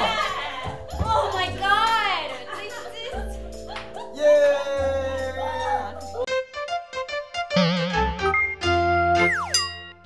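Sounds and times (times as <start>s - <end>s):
electronic synth jingle: 7.5s - 10.0s.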